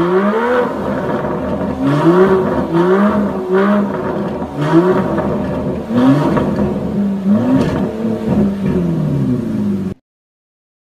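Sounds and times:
car engine revving: 0:00.0 - 0:10.0.

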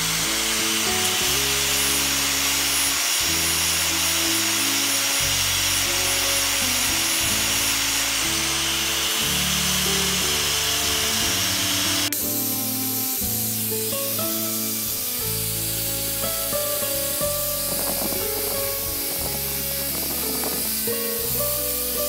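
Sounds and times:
angle grinder sanding wood: 0:00.0 - 0:22.0
background music with held notes: 0:00.0 - 0:22.0.

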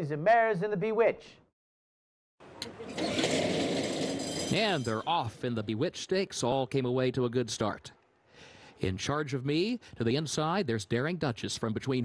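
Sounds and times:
starting gate clacking open: 0:02.6 - 0:05.1
bell ringing continuously: 0:04.2 - 0:05.1.

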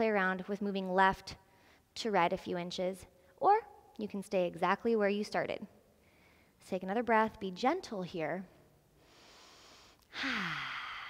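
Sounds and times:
woman inhaling: 0:06.0 - 0:06.6, 0:09.0 - 0:11.0
woman sighing exhale: 0:10.1 - 0:11.0.

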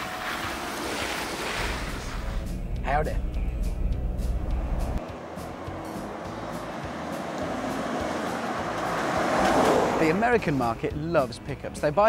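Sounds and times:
truck approaching: 0:00.0 - 0:11.9
engine and road rumble: 0:00.0 - 0:12.0
background music: 0:00.3 - 0:12.0.

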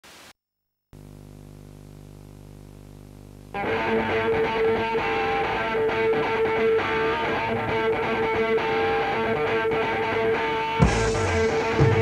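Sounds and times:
low electrical hum: 0:01.0 - 0:03.6.

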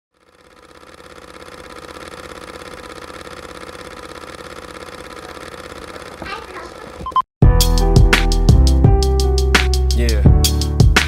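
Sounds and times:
fast-pulsing mechanical whir: 0:00.1 - 0:07.1.

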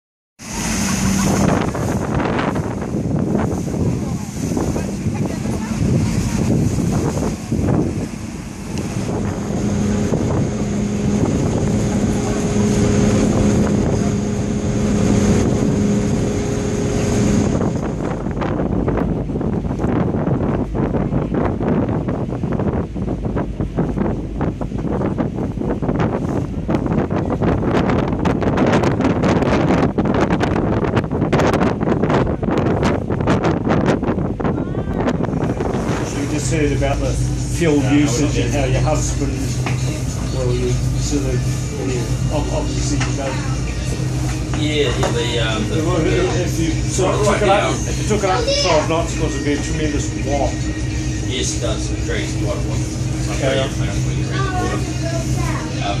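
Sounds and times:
diesel engines humming with whine: 0:00.4 - 0:03.2, 0:05.2 - 0:26.7, 0:34.6 - 0:56.0
engine rumble: 0:00.4 - 0:56.0
water wash: 0:00.4 - 0:56.0
wind on microphone: 0:00.4 - 0:56.0.

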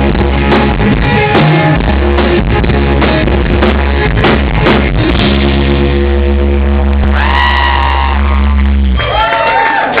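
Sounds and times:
band chord ringing on bass and guitars: 0:00.0 - 0:09.2
audience whooping and cheering: 0:07.0 - 0:10.0.

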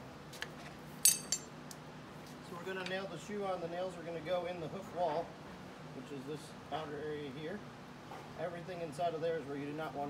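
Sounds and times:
hammer clinking on horseshoe: 0:01.0 - 0:01.5.

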